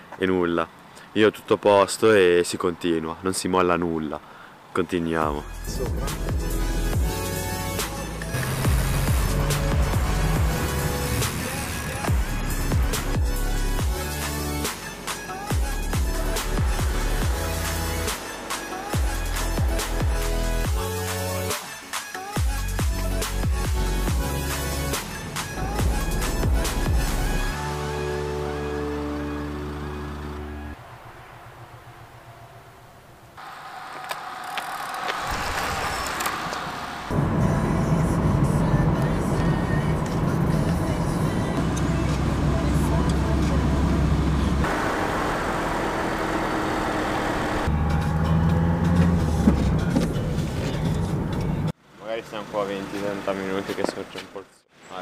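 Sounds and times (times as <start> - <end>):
song with sustained chords: 5.4 - 32.2.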